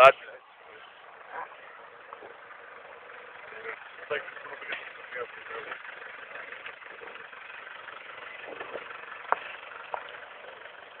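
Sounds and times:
tyres rushing on wet road: 0:00.0 - 0:11.0.

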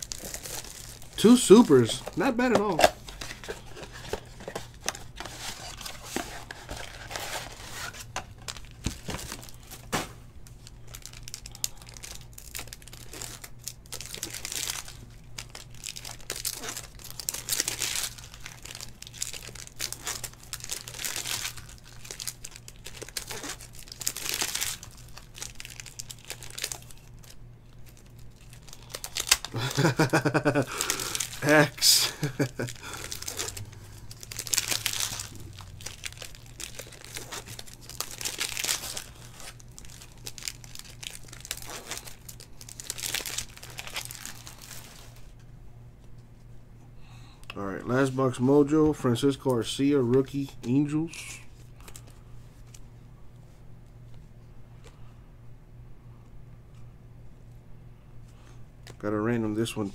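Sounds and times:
foil packs tearing and crinkling: 0:00.0 - 0:45.2.

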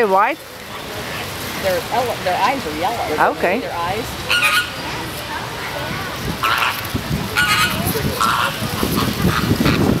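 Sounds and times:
flamingos honking: 0:03.8 - 0:05.1, 0:06.3 - 0:10.0.

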